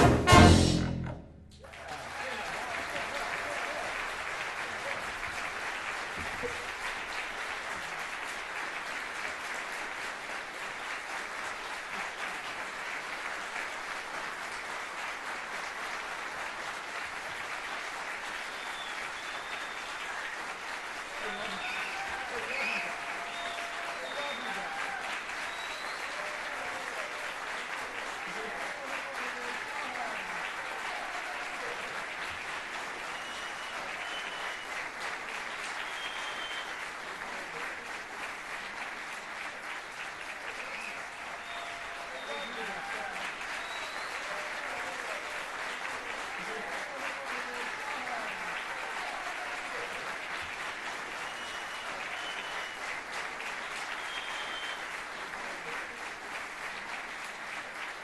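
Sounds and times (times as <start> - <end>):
audience applauding: 0.0 - 58.0
voices calling out and cheering: 21.2 - 27.2.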